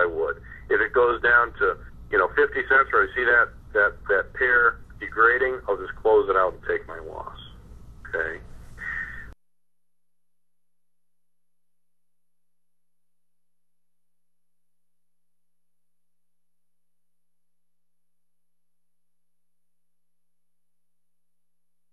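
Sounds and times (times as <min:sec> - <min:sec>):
faint steady hum: 0:00.0 - 0:09.4
man speaking: 0:00.0 - 0:09.4.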